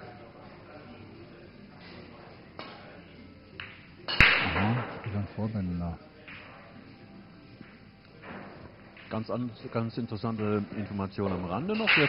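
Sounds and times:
pool balls rolling and colliding: 0:02.6 - 0:05.4, 0:06.2 - 0:12.0
cue striking ball: 0:03.6 - 0:05.1.

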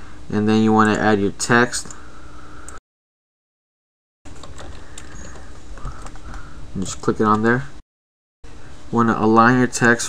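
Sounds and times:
microphone hiss and hum: 0:00.0 - 0:02.8, 0:04.3 - 0:07.8, 0:08.5 - 0:10.0.

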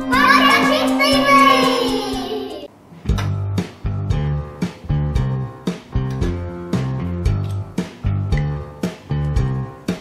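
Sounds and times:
child singing: 0:00.0 - 0:02.7
jingle music: 0:00.0 - 0:02.7.

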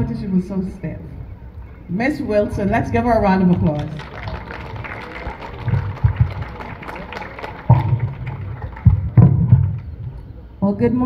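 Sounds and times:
voices: 0:00.0 - 0:08.8
audience applauding: 0:03.5 - 0:10.0.

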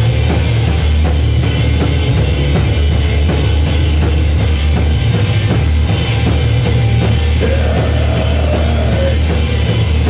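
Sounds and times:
cymbal and drum strikes: 0:00.0 - 0:10.0
heavy electric bass line: 0:00.0 - 0:10.0
rock band playing: 0:00.0 - 0:10.0.

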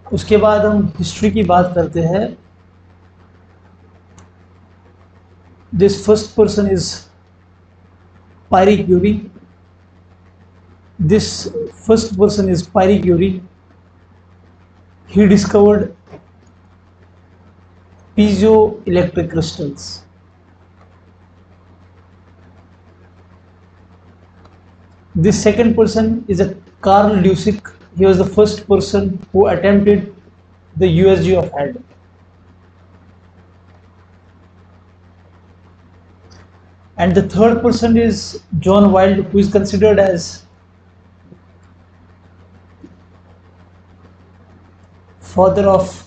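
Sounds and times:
background hiss: 0:00.0 - 0:46.0
faint low hum: 0:00.0 - 0:46.0
faint ticks: 0:02.5 - 0:05.7, 0:20.4 - 0:25.1.

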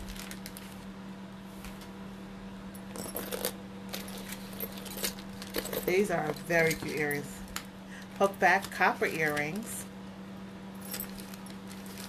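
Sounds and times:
faint steady hum: 0:00.0 - 0:12.0
metal earrings clinking: 0:03.0 - 0:07.4.

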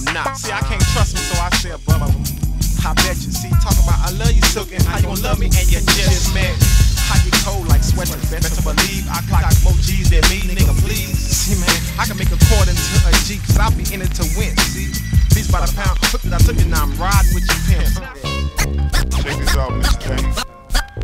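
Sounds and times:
rapping over a drum beat: 0:00.0 - 0:20.9.

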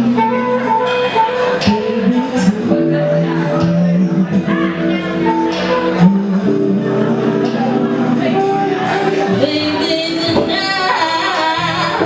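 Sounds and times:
live jazz band: 0:00.0 - 0:12.0
woman singing into a microphone: 0:00.0 - 0:12.0.

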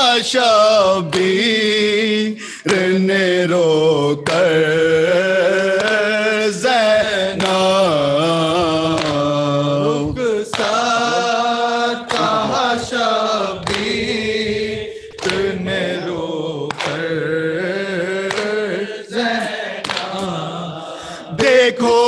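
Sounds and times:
men chanting into microphone: 0:00.0 - 0:22.0
hands slapping chests: 0:02.7 - 0:02.9, 0:04.2 - 0:04.6, 0:05.8 - 0:06.1, 0:07.4 - 0:07.8, 0:08.8 - 0:09.4, 0:10.5 - 0:11.1, 0:12.0 - 0:13.0, 0:13.6 - 0:17.3, 0:18.2 - 0:18.8, 0:19.7 - 0:20.5.

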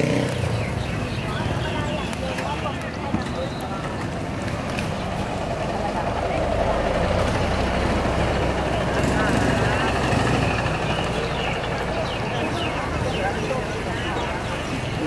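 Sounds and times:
vehicle engine rumble: 0:00.0 - 0:15.0.

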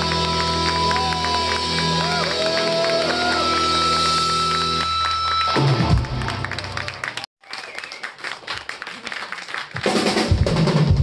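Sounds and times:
applause: 0:00.0 - 0:10.5.

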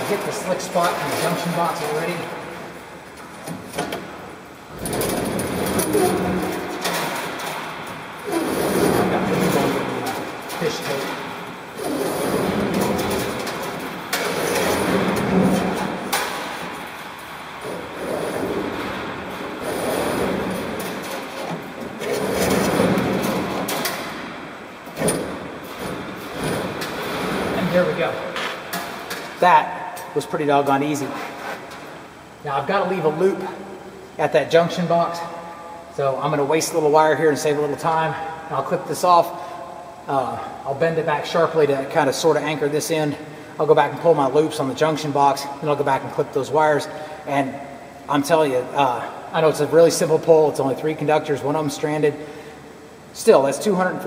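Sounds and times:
wire rasping through conduit: 0:04.6 - 0:24.2.

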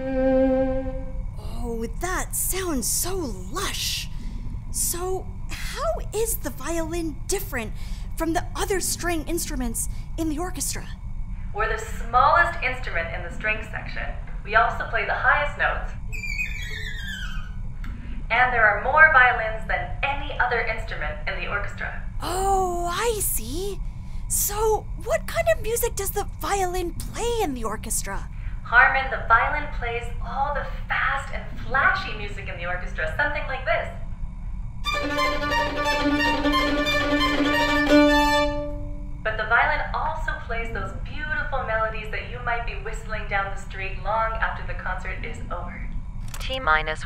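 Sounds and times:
violin note sliding down: 0:00.0 - 0:01.2, 0:34.9 - 0:39.0.

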